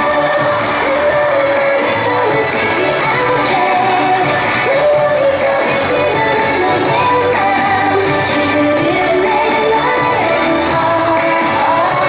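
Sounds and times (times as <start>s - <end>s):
pop song with vocals: 0.0s - 12.0s.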